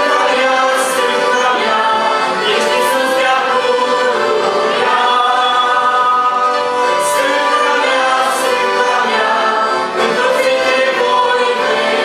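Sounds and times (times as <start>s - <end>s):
accordions: 0.0s - 12.0s
group singing a hymn: 0.0s - 12.0s.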